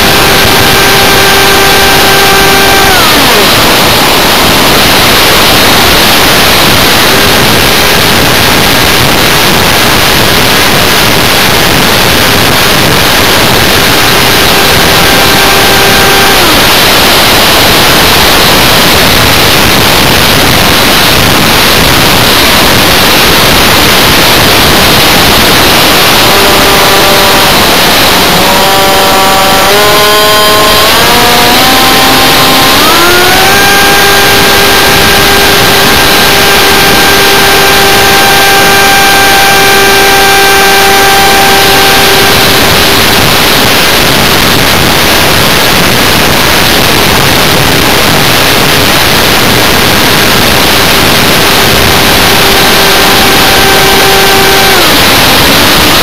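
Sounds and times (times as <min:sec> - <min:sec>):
electric motor and propeller whine: 0:00.0 - 0:56.0
rushing airflow hiss: 0:00.0 - 0:56.0.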